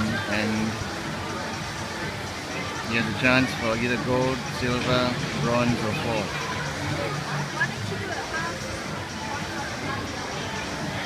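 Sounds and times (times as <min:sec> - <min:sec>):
crowd hum: 0:00.0 - 0:11.0
spectators calling and talking: 0:00.0 - 0:11.0.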